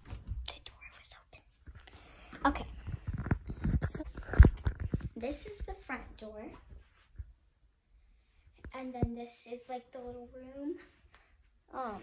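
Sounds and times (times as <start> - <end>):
person whispering: 0.4 - 1.6.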